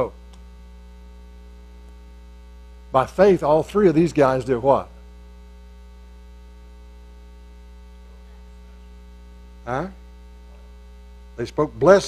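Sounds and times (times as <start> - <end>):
faint buzz: 0.0 - 12.0
low electrical mains hum: 0.0 - 12.0.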